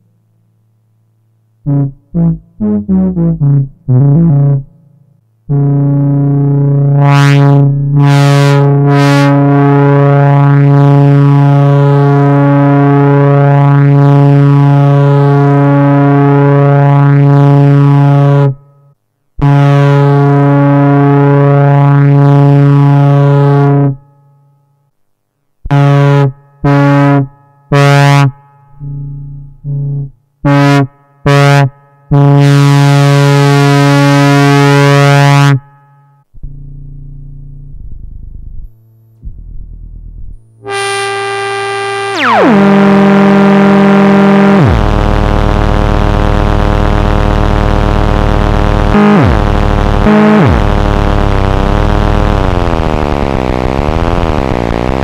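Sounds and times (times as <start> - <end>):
analog synthesizer low note: 0.0 - 24.1, 25.7 - 55.0.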